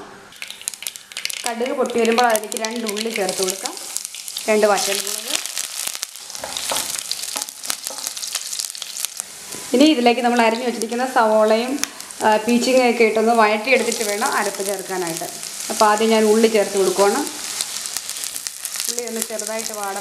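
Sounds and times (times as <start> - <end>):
hot oil sizzling in a pan: 0.3 - 20.0
mustard seeds popping: 0.4 - 9.3, 13.7 - 20.0.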